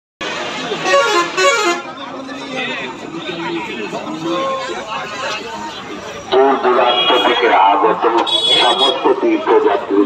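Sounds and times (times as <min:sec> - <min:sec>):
crowd chatter: 0:00.2 - 0:10.0.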